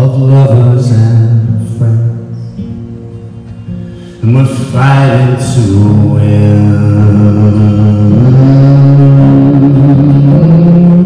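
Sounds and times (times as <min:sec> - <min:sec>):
acoustic guitar: 0:00.0 - 0:11.0
man singing a held note: 0:04.1 - 0:11.0.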